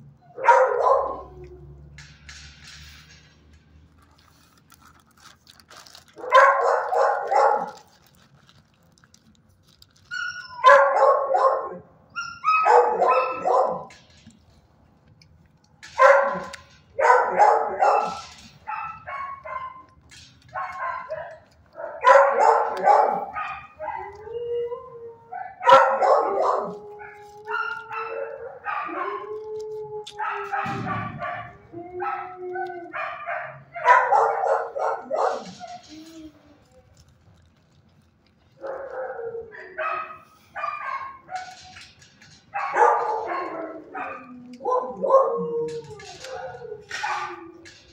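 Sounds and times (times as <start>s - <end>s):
dogs barking: 0.2s - 1.6s, 6.2s - 7.9s, 10.6s - 14.1s, 15.9s - 24.4s, 25.3s - 35.8s, 38.6s - 47.9s
dogs wavering howls: 0.3s - 2.0s, 20.6s - 36.8s, 42.6s - 47.9s.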